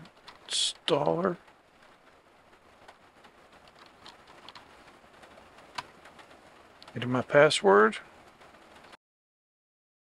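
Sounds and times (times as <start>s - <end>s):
low background noise: 0.0s - 9.0s
computer keyboard keystrokes: 2.9s - 4.7s.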